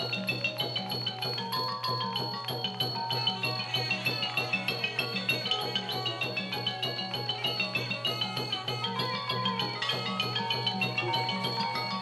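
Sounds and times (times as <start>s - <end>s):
drums: 0.0s - 12.0s
xylophone notes: 0.0s - 12.0s.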